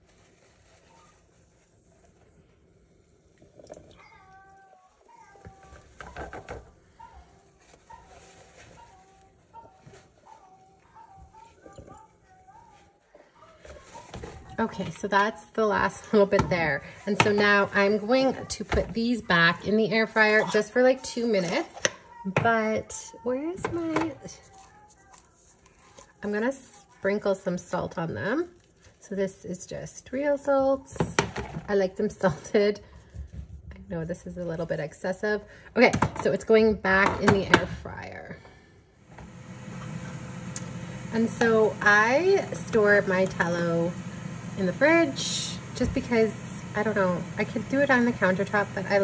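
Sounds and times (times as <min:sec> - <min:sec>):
faint high-pitched voice talking: 0:03.9 - 0:06.3, 0:06.9 - 0:14.6, 0:19.6 - 0:27.3
woman's voice: 0:13.6 - 0:24.6, 0:26.2 - 0:32.9, 0:33.7 - 0:38.6, 0:41.1 - 0:49.0.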